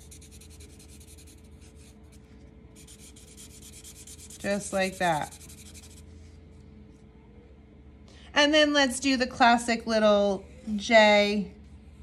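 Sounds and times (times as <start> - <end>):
marker scribbling on paper: 0.0 - 2.0, 2.8 - 6.0.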